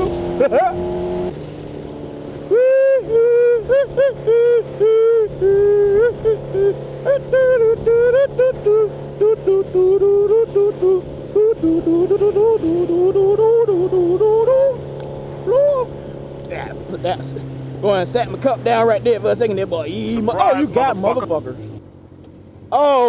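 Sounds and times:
motorcycle engine humming: 0:00.0 - 0:23.0
road noise: 0:00.0 - 0:23.0
man singing: 0:02.6 - 0:14.8.

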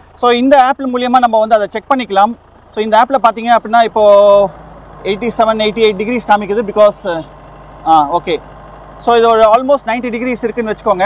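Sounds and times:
person speaking: 0:00.4 - 0:11.0.

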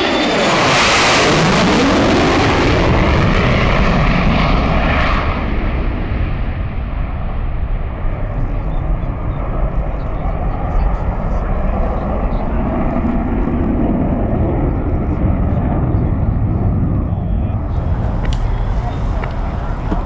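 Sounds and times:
jet afterburner roar: 0:00.0 - 0:20.0.

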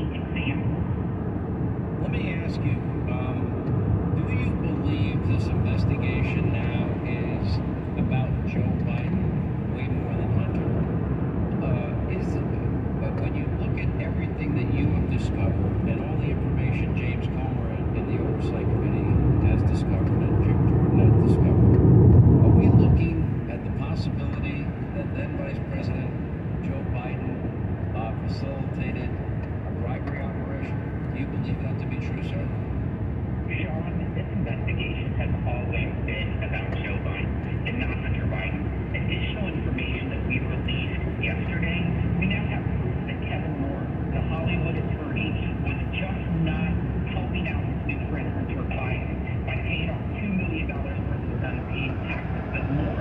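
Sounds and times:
faint talk radio voice: 0:00.0 - 0:00.8, 0:02.0 - 0:03.5, 0:04.2 - 0:10.6, 0:11.6 - 0:21.7, 0:22.4 - 0:27.4, 0:28.0 - 0:32.6, 0:33.5 - 0:53.0
road and tyre rumble: 0:00.0 - 0:53.0.

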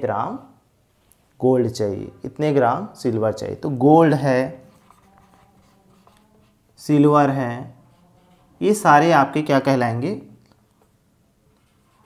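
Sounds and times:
marker scratching on whiteboard: 0:04.5 - 0:09.4, 0:11.5 - 0:12.0.

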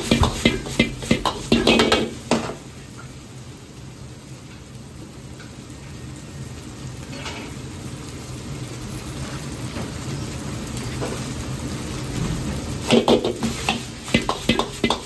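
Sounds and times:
gas burner hum: 0:00.0 - 0:03.9, 0:04.5 - 0:15.0
food sizzling in a wok: 0:00.0 - 0:15.0.

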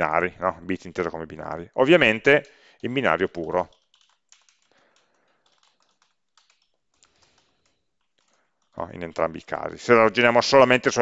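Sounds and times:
faint keyboard typing: 0:00.7 - 0:11.0.

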